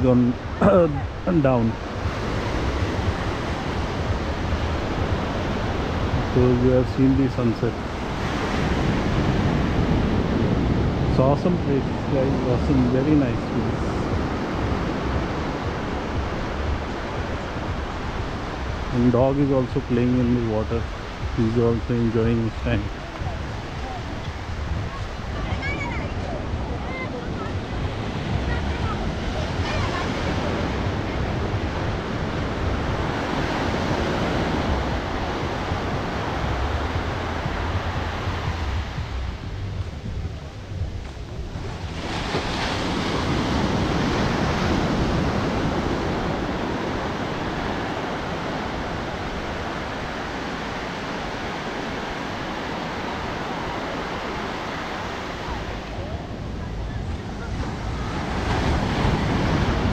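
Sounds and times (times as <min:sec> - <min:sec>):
waves breaking on sand: 0:00.0 - 0:59.9
wind on microphone: 0:00.0 - 0:59.9.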